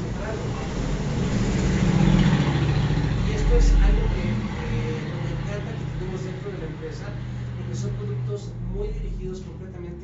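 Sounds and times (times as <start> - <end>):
vehicle engine rumbling past: 0.0 - 10.0.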